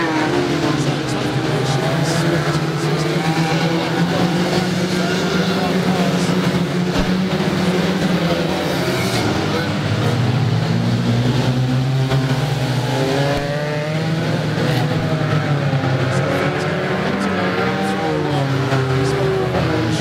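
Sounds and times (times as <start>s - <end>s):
racing car engines revving: 0.0s - 20.0s.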